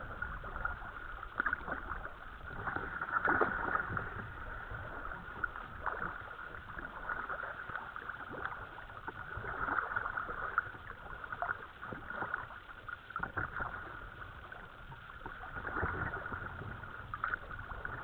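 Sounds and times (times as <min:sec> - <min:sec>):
kayak paddles dipping in water: 0:00.0 - 0:18.0
water splashes: 0:00.0 - 0:18.0
water trickling along hull: 0:00.0 - 0:18.0.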